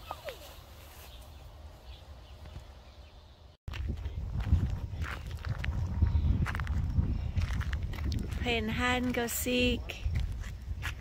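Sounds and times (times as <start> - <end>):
footsteps on gravel: 3.7 - 11.0.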